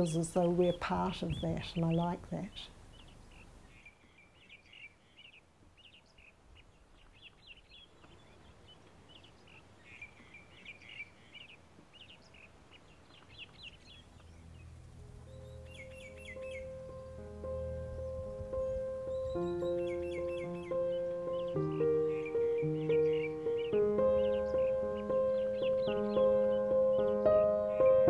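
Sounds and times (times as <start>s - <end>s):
low outdoor hiss: 0.0s - 28.0s
small birds chirping: 0.0s - 28.0s
music with sustained notes: 13.4s - 28.0s.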